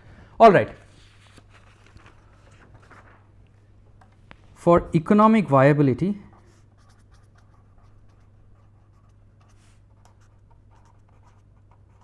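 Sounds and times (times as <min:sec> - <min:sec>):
pen scratching on paper: 0:06.4 - 0:12.0.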